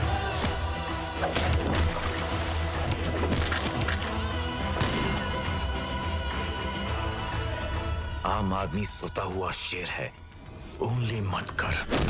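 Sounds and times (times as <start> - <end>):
bass-heavy film score: 0.0 - 12.0.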